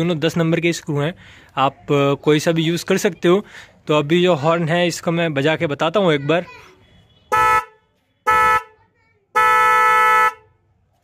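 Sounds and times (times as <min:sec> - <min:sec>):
car horn blasts: 0:06.8 - 0:10.6.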